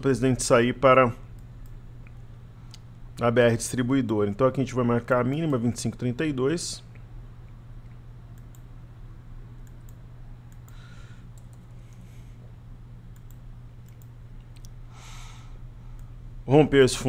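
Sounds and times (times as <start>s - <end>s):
low steady hum: 0.0s - 17.0s
computer mouse clicks: 8.4s - 8.7s, 9.6s - 12.0s, 13.1s - 14.8s.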